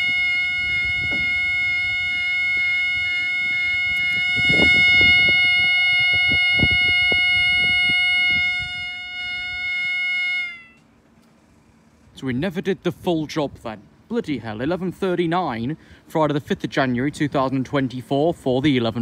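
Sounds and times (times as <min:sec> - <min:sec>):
level crossing alarm tone: 0:00.0 - 0:10.8.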